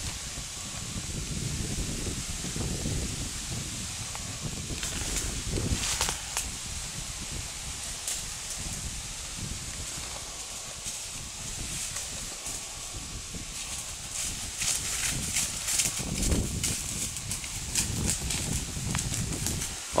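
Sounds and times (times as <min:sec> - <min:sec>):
horse hoofbeats on leaves and dirt: 0:03.8 - 0:20.0.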